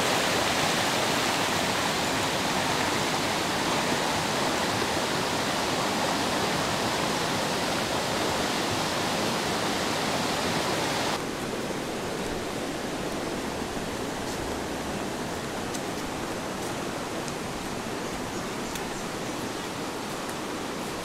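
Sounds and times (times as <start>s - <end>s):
river water running over rocks: 0.0s - 21.0s.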